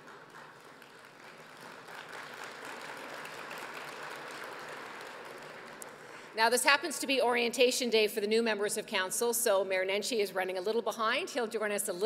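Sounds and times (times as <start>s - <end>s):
audience applauding: 0.0s - 6.3s.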